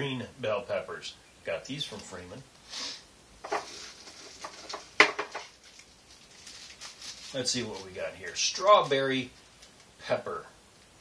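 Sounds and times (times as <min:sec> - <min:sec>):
paper packets rustling: 0:03.4 - 0:09.9.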